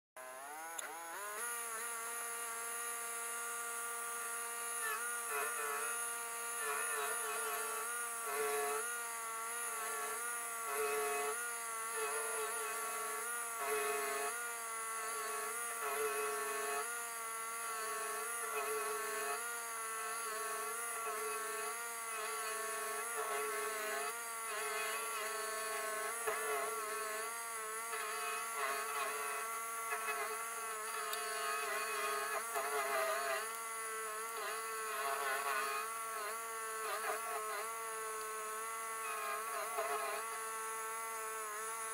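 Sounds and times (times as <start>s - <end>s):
stump grinder engine running: 0.2s - 4.7s.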